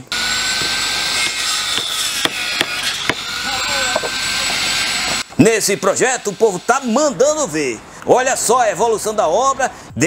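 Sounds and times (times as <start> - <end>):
circular saw whining: 0.0 - 7.8.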